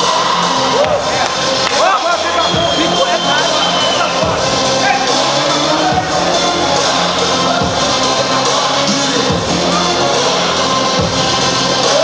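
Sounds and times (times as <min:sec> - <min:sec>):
music with singing: 0:00.0 - 0:12.0.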